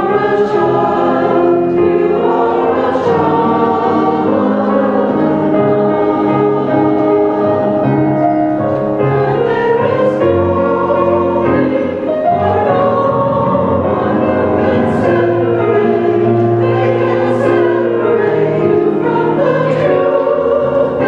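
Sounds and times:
church choir singing: 0.0s - 21.0s.

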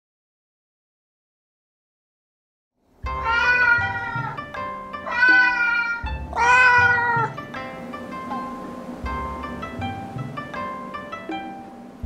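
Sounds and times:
background music: 3.0s - 12.0s
cat meowing: 3.1s - 7.4s.

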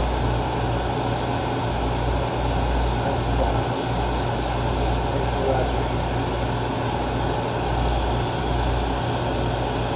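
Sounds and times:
constant low hum: 0.0s - 9.9s
torch flame roaring: 0.0s - 9.9s.

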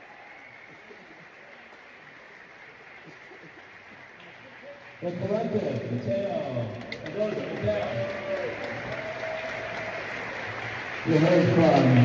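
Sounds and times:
audience applause: 0.0s - 12.0s
man speaking over sound system: 5.0s - 8.3s, 11.0s - 12.0s.

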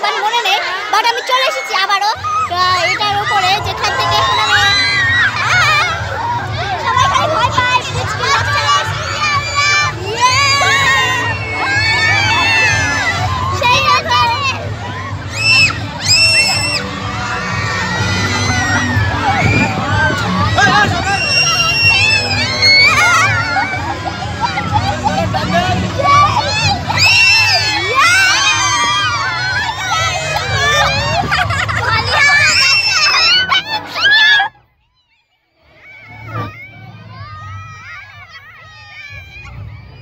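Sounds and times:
children shouting and cheering: 0.0s - 40.0s
faint crowd voices: 0.0s - 40.0s
high-pitched voices shrieking: 8.2s - 34.6s.

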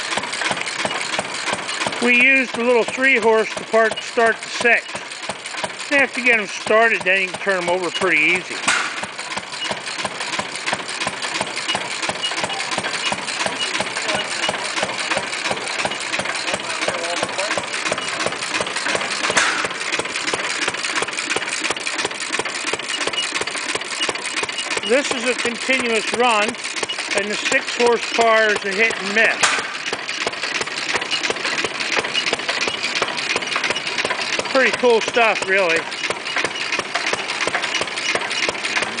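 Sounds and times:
flywheel gas engine running: 0.0s - 39.0s.

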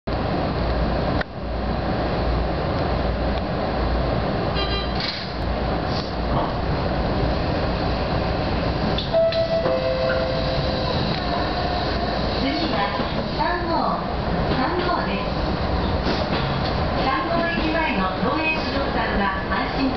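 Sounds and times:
train wheels rumbling on rail: 0.1s - 19.9s.

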